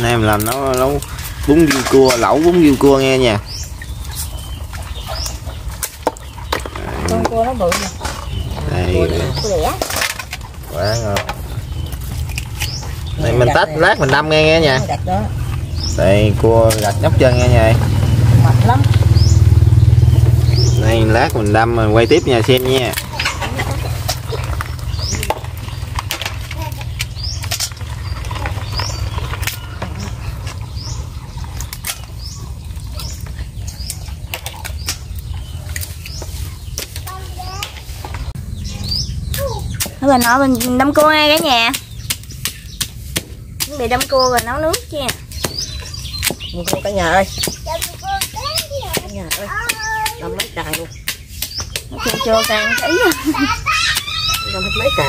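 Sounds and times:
crabs clattering in plastic basin: 0.0 - 38.3
low rumble: 1.0 - 36.7.

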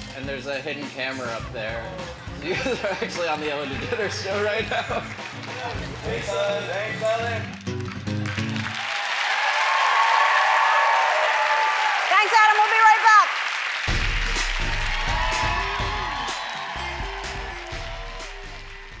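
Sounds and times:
upbeat music with deep bass beat: 0.0 - 8.7, 13.8 - 19.0
audience applauding: 2.5 - 19.0
audience cheering: 8.4 - 19.0.

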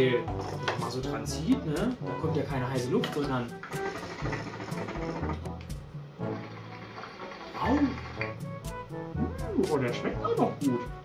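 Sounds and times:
background music with beat: 0.0 - 6.7, 7.5 - 11.0.

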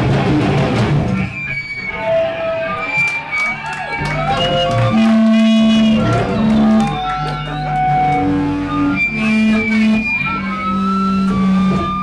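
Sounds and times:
electric guitar long notes: 0.0 - 12.0.

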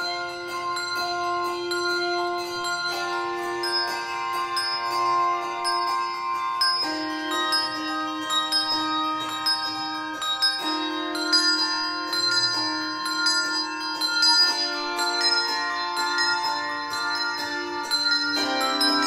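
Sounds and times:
handbell choir ringing chords: 0.0 - 19.0.

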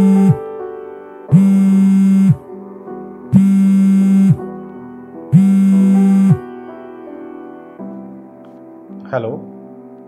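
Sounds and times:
phone ringtone: 0.0 - 0.4, 1.3 - 2.4, 3.3 - 4.4, 5.3 - 6.4
soft piano music: 0.0 - 10.0.

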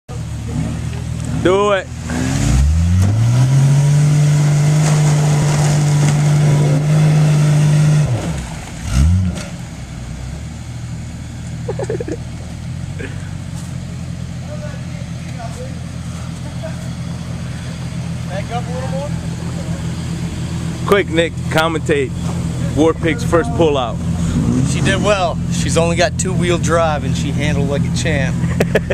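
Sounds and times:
car engine revving under load: 0.1 - 28.9.

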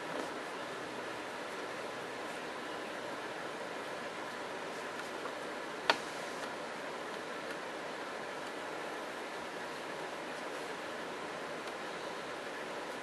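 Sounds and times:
steady background hiss: 0.0 - 13.0.

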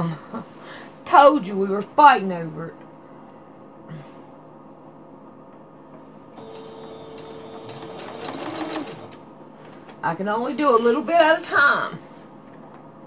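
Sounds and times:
sewing machine stitching: 6.4 - 9.2.

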